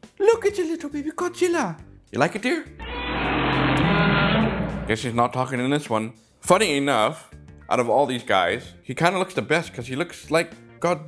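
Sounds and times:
harsh rumbling growl: 0:02.8 - 0:05.1.

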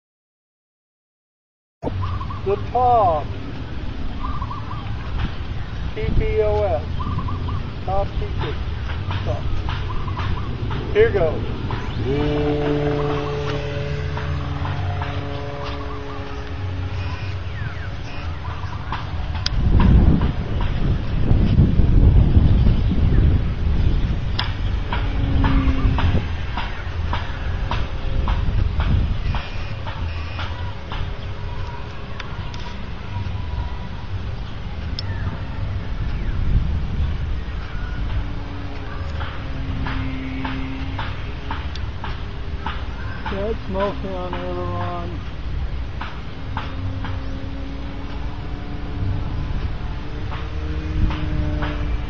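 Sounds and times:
wind on the microphone: 0:01.8 - 0:52.0
model airplane motor droning: 0:12.0 - 0:17.6, 0:46.7 - 0:52.0.

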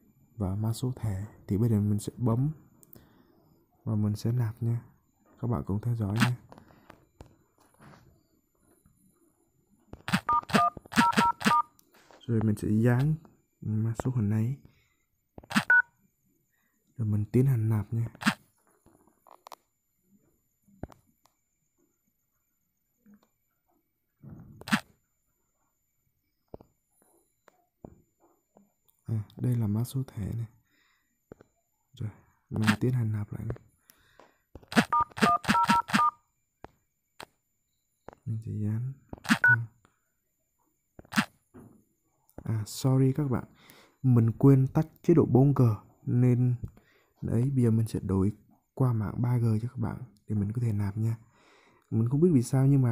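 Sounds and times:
touch-tone keypad beep: 0:10.3 - 0:11.7, 0:15.7 - 0:15.9, 0:34.9 - 0:36.2, 0:39.4 - 0:39.6.

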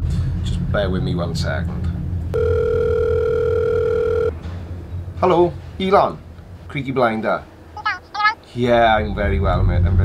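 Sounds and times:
telephone ringing tone: 0:02.4 - 0:04.3.

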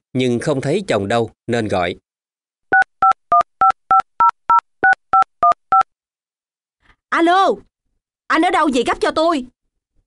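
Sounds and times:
telephone keypad touch-tones: 0:02.7 - 0:05.9.

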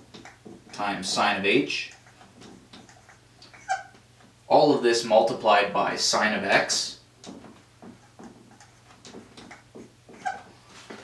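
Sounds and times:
marker squeak: 0:02.0 - 0:04.0, 0:08.0 - 0:10.5
marker writing on whiteboard: 0:07.3 - 0:11.0.

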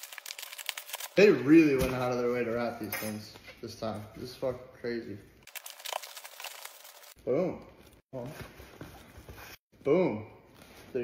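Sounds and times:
bubble wrap crinkling: 0:00.0 - 0:01.3, 0:05.4 - 0:07.2.

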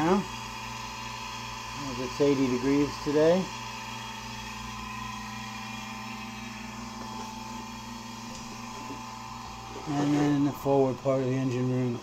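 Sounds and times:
air conditioning unit humming: 0:00.0 - 0:12.0.

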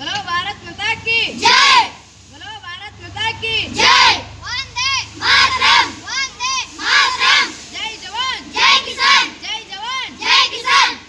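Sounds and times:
children chanting in unison: 0:01.4 - 0:02.0, 0:03.7 - 0:11.0.

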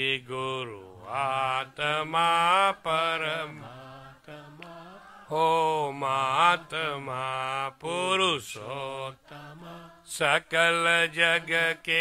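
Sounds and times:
person chanting devotional song: 0:00.0 - 0:12.0.

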